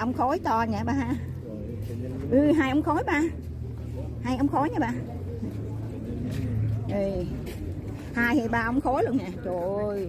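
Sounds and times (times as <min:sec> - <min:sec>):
faint background voices: 0:00.0 - 0:10.0.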